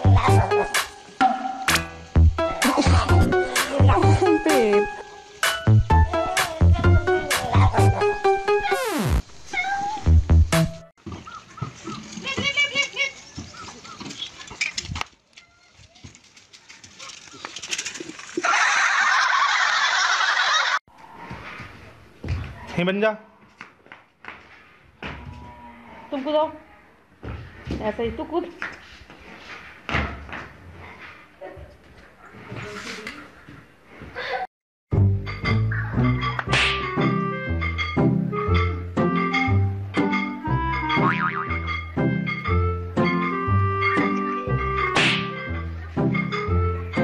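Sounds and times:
background music: 0.0 - 9.2, 10.1 - 10.9, 35.0 - 47.0
falling sound effect: 5.9 - 10.8
cat meowing: 9.5 - 10.2.

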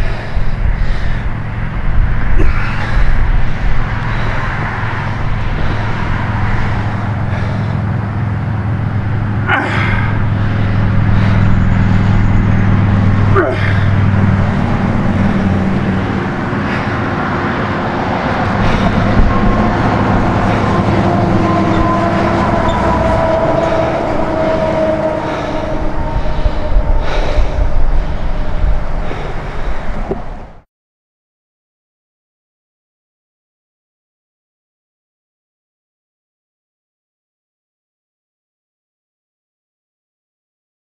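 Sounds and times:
man groaning and grunting: 2.3 - 3.1, 9.4 - 10.2, 13.2 - 14.1.

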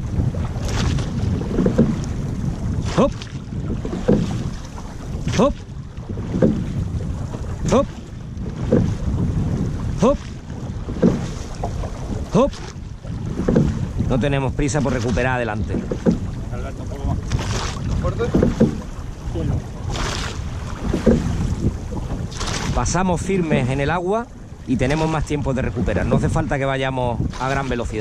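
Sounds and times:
oar strokes in water: 0.0 - 28.0
wind buffeting microphone: 0.0 - 28.0.

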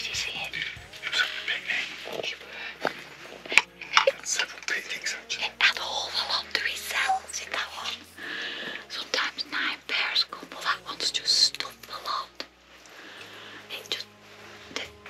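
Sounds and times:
people whispering: 0.0 - 15.0.

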